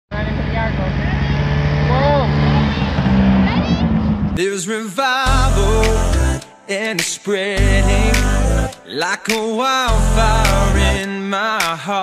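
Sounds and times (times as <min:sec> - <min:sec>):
snowmobile engine running: 0:00.2 - 0:04.4.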